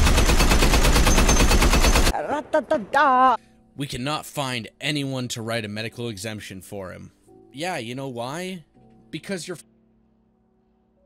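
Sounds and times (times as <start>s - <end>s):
rapid automatic gunfire: 0.0s - 2.1s.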